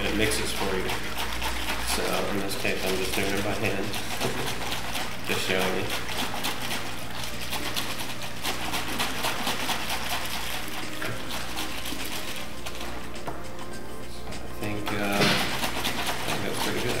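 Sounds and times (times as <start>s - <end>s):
liquid sloshing in plastic bottle: 0.0s - 13.1s.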